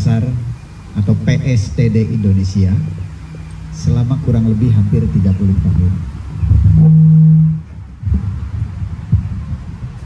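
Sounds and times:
low rumbling thumps: 0:00.0 - 0:10.0.

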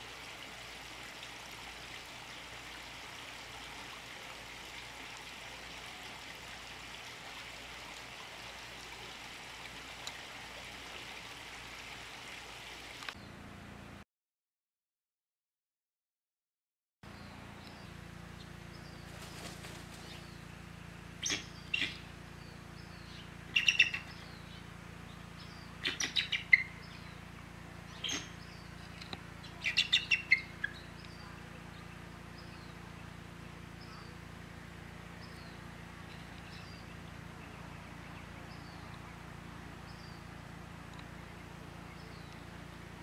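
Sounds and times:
eagle piping chattering calls: 0:21.2 - 0:22.0, 0:23.5 - 0:24.1, 0:25.8 - 0:26.9, 0:27.9 - 0:28.4, 0:29.6 - 0:30.8.

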